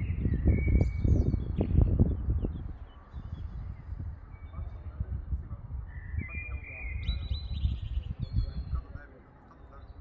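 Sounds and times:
songbird singing: 0.0s - 10.0s.

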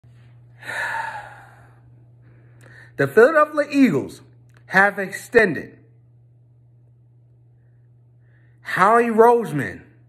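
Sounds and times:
man breathing heavily: 0.5s - 3.0s.

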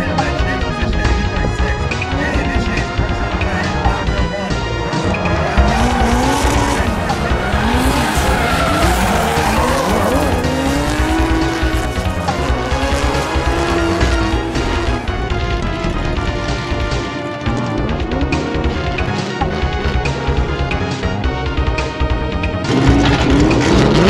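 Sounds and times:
background music: 0.0s - 24.0s
car engines revving: 0.0s - 24.0s.

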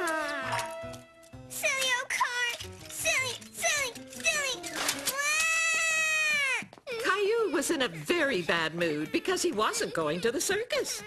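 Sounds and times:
background music: 0.0s - 11.0s
cartoon boy crying and wailing: 5.1s - 11.0s.

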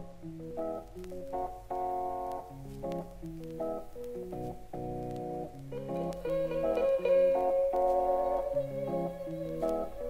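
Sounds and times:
keyboard melody: 0.0s - 10.0s.

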